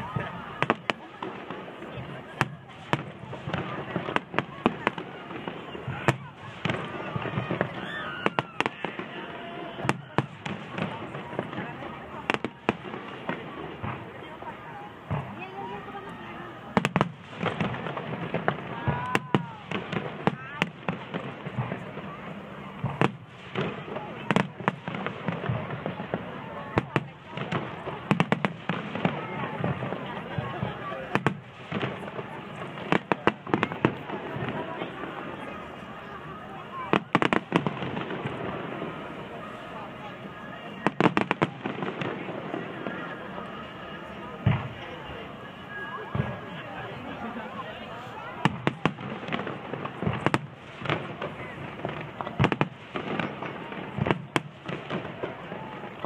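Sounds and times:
fireworks bangs: 0.0 - 56.0.

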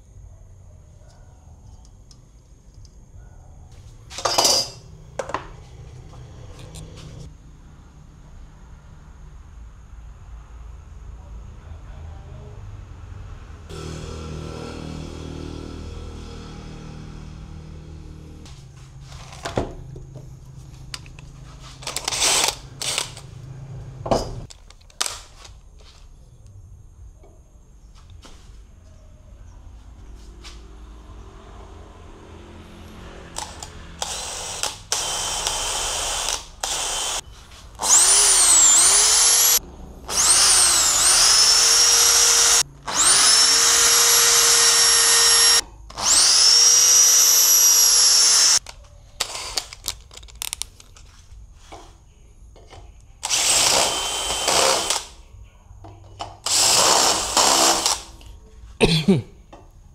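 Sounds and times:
cordless drill whining: 21.8 - 23.2, 33.4 - 37.2, 37.8 - 48.6, 53.2 - 55.2, 56.4 - 58.1.

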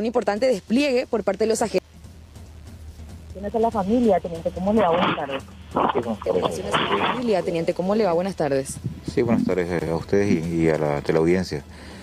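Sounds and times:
people conversing: 0.0 - 12.0.

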